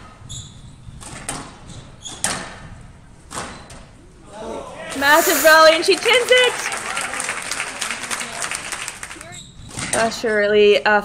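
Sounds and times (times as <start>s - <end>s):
spectators applauding: 4.9s - 9.4s.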